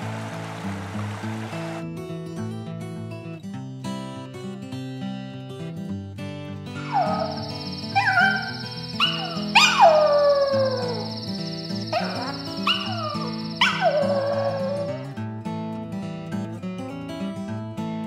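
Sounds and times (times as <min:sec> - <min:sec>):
acoustic guitar music: 0:00.0 - 0:18.0
dog howling: 0:06.8 - 0:15.2.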